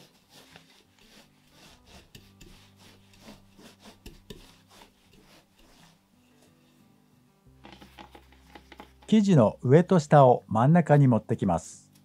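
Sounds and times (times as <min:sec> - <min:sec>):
rolling pin rubbing over dough: 0:00.0 - 0:06.8, 0:07.6 - 0:09.2.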